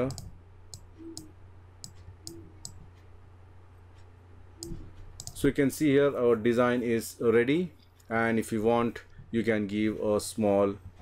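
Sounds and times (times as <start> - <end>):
computer mouse clicking: 0.0 - 3.1, 4.0 - 5.5
steady low hum: 0.0 - 11.0.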